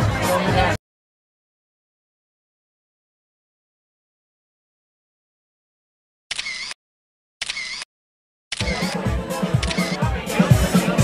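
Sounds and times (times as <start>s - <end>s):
camera shutter: 6.3s - 6.8s, 7.4s - 7.9s, 8.5s - 8.9s, 9.6s - 10.0s.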